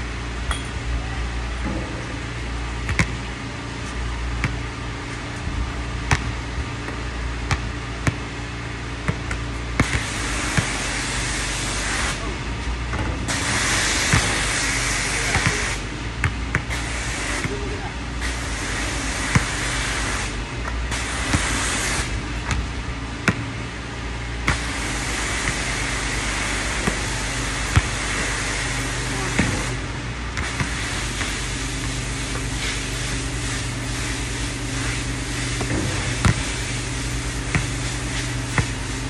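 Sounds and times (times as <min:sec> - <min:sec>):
steady low hum: 0:00.0 - 0:39.0
basketball bouncing on hard court: 0:02.8 - 0:03.3, 0:04.3 - 0:04.7, 0:06.0 - 0:08.4, 0:09.0 - 0:11.0, 0:14.0 - 0:14.6, 0:15.3 - 0:15.6, 0:16.2 - 0:16.7, 0:19.3 - 0:19.6, 0:22.4 - 0:23.5, 0:25.4 - 0:28.7, 0:30.3 - 0:32.6, 0:35.6 - 0:38.9
loud hiss: 0:13.3 - 0:15.8, 0:18.2 - 0:22.2, 0:24.5 - 0:29.8, 0:30.4 - 0:39.0.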